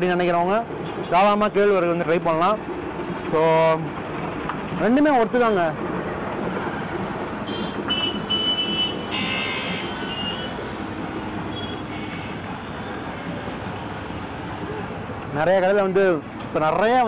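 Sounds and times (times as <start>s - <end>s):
motorbikes and rickshaws passing: 0.0s - 17.0s
high squeals: 7.4s - 13.6s.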